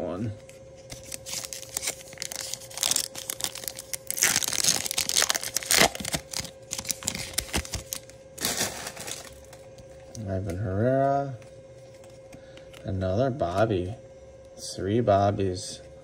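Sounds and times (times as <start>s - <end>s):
foil wrapper tearing and crinkling: 0.9s - 9.5s.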